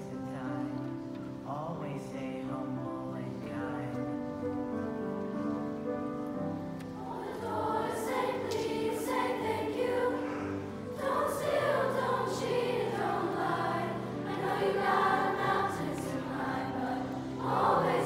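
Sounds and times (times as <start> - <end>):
low held accompaniment: 0.0 - 18.0
choir singing: 6.8 - 18.0.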